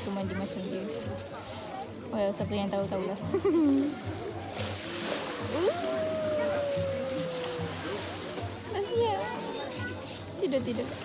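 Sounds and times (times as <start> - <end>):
elephant call: 5.6 - 8.2.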